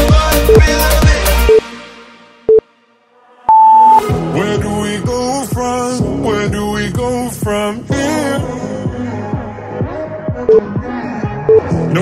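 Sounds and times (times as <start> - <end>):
timer beeps: 3.5 - 4.0, 11.5 - 11.7.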